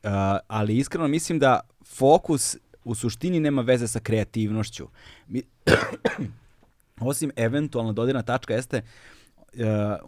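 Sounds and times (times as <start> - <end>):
man clearing throat: 5.7 - 6.4.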